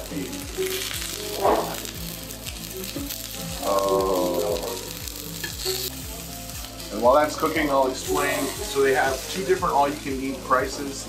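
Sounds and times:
meat sizzling on a grill: 0.0s - 11.0s.

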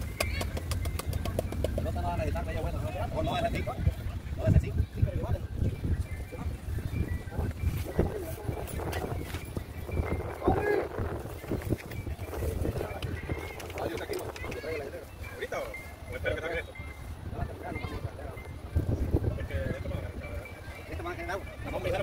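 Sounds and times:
wind on microphone: 0.0s - 22.0s.

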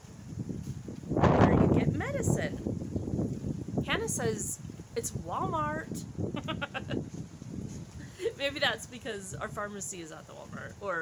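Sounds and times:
woman laughing: 6.3s - 7.1s, 8.1s - 8.6s.

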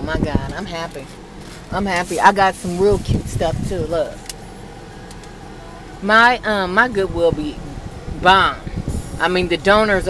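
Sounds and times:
car interior hum: 0.0s - 10.0s.

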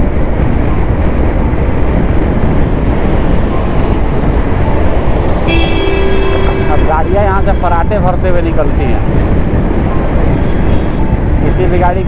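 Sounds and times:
vehicle road rumble and wind: 0.0s - 12.0s
vehicle horn: 5.4s - 7.4s.

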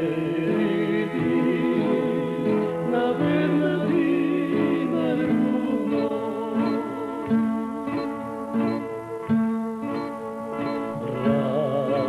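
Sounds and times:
man singing unaccompanied: 0.0s - 7.9s, 11.0s - 12.0s.

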